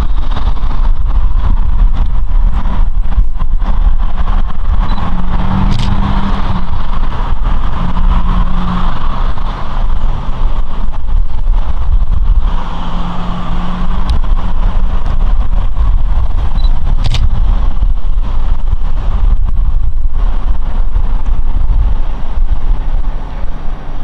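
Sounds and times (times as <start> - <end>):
cars passing: 0.0 - 24.0
steady low rumble: 0.0 - 24.0.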